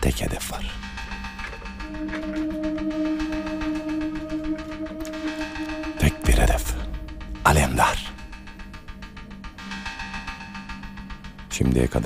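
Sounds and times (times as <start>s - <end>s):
held drone note: 0.8s - 11.5s.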